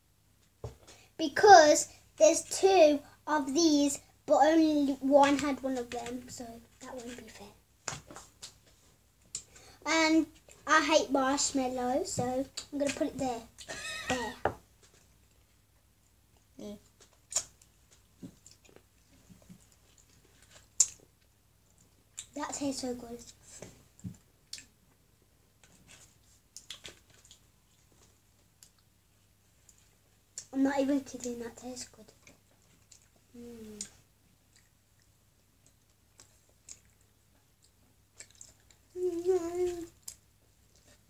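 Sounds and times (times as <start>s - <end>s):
child chewing gummy candy: 17.0s - 22.3s, 25.6s - 30.5s, 32.1s - 41.0s
wet mouth clicks: 17.3s - 17.5s.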